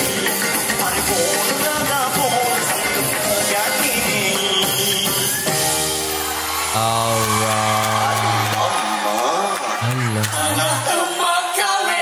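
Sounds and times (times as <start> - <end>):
full band backing: 0.0 - 12.0
man singing: 0.4 - 5.6, 6.7 - 12.0.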